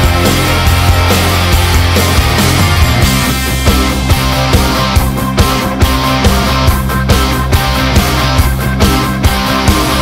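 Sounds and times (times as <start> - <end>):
bass: 0.0 - 10.0
electric guitar: 0.0 - 10.0
steady drum beat: 0.0 - 10.0.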